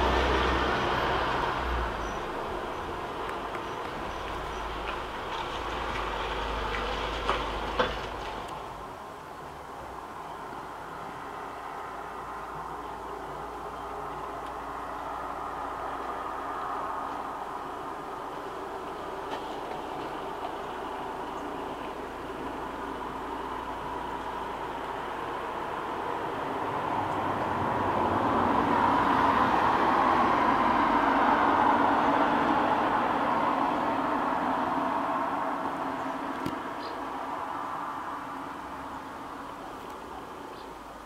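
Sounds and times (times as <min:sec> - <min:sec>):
road vehicle passing by: 0:00.0 - 0:41.0.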